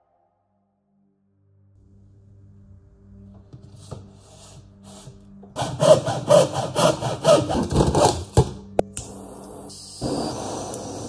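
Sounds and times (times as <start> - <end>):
hand saw cutting plastic pipe: 4.9 - 8.5.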